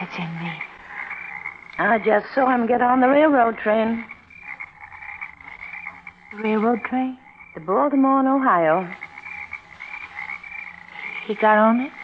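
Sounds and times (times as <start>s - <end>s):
frogs trilling: 0.0s - 12.0s.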